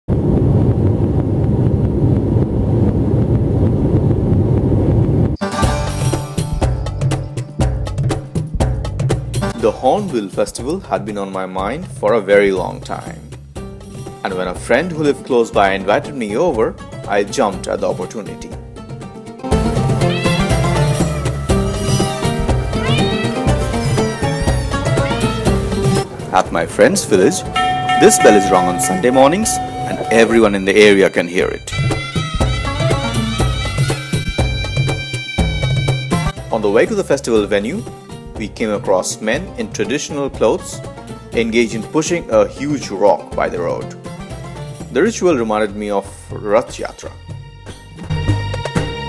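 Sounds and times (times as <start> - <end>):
jet engine cabin rumble: 0.1 - 5.4
percussive music: 5.4 - 10.8, 18.6 - 36.5, 47.7 - 49.0
cat meowing: 20.0 - 25.4.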